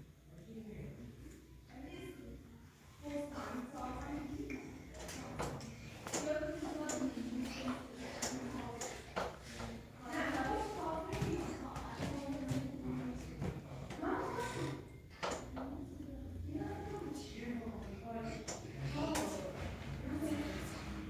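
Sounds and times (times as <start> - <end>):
boy talking: 6.1 - 8.7, 18.2 - 21.0.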